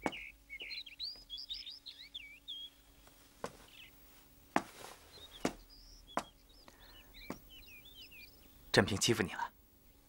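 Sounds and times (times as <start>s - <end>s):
small birds chirping: 0.0s - 10.0s
footstep: 3.0s - 7.5s.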